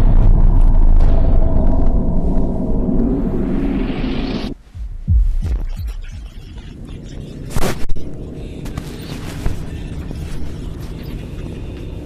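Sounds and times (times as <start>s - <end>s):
sharp hit: 0.0s - 6.2s
deep heartbeat-like thuds: 0.0s - 6.6s
dense rumble: 0.0s - 12.0s.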